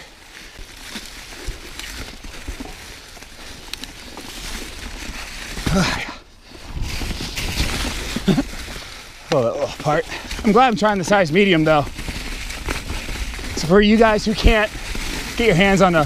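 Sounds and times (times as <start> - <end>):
bike tyres rolling over dry leaves: 0.0 - 16.0.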